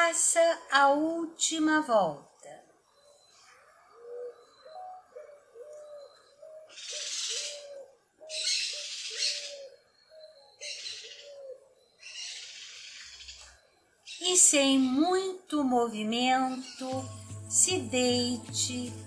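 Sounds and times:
bird cooing: 3.0 - 13.4.

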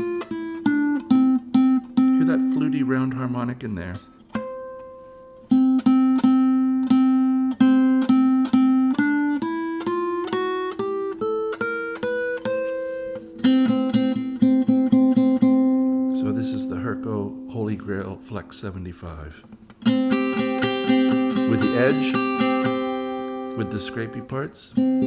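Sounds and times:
guitar picked notes: 0.0 - 25.0.

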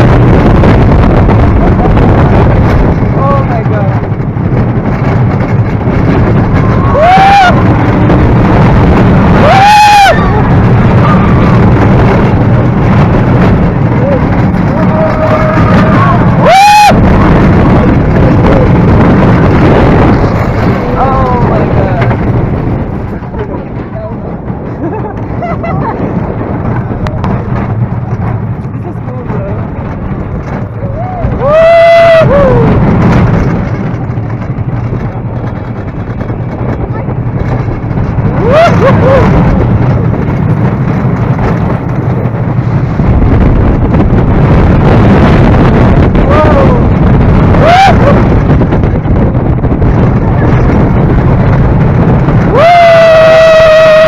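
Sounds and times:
roller coaster wheels rumbling: 0.0 - 54.0
wind rushing: 0.0 - 54.0
riders screaming: 6.4 - 8.6, 9.2 - 11.9, 13.9 - 18.8, 30.7 - 32.9, 38.3 - 39.6, 46.2 - 48.5, 52.4 - 54.0.

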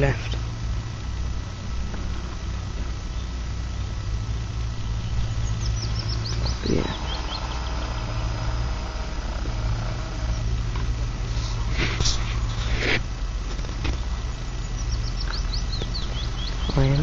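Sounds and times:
small birds singing: 0.0 - 12.8, 13.6 - 17.0
steady low rumble: 0.0 - 17.0
high falling bird notes: 4.8 - 10.6.

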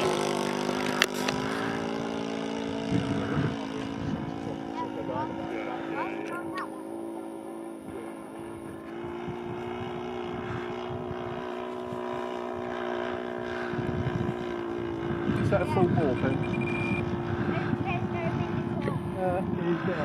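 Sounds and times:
model airplane engine droning: 0.0 - 20.0.

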